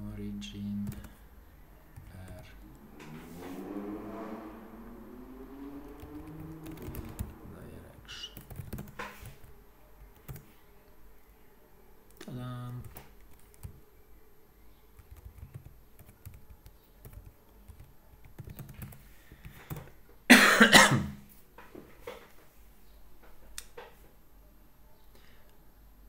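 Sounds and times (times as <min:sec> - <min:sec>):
computer keyboard typing: 0:00.8 - 0:01.2, 0:01.9 - 0:02.6, 0:05.9 - 0:07.6, 0:08.2 - 0:09.5, 0:10.2 - 0:10.5, 0:12.1 - 0:13.8, 0:15.0 - 0:19.9
person coughing: 0:20.3 - 0:21.2.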